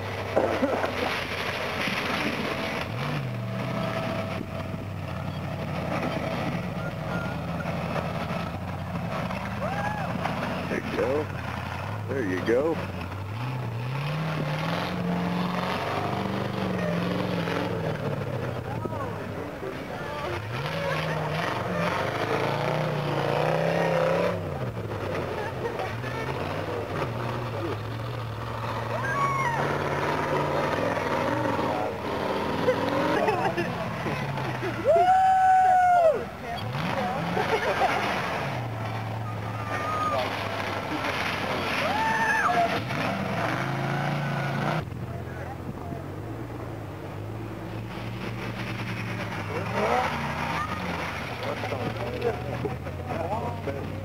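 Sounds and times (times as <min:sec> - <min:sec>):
buggy engine revving: 0:00.0 - 0:54.0.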